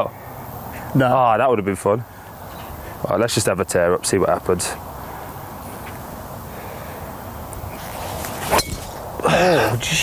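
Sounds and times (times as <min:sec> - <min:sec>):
steady background noise: 0:00.0 - 0:10.0.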